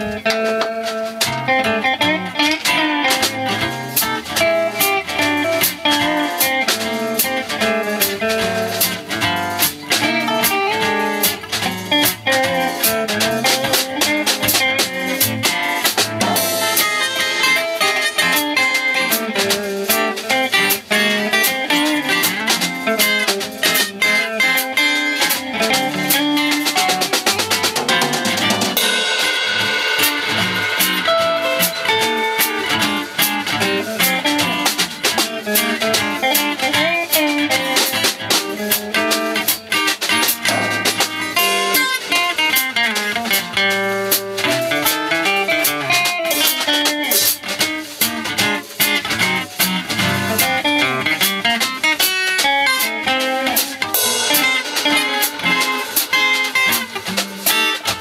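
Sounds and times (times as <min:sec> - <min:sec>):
acoustic guitar: 0:00.0 - 0:58.0
drum kit beat: 0:00.0 - 0:58.0
electric guitar: 0:00.0 - 0:58.0.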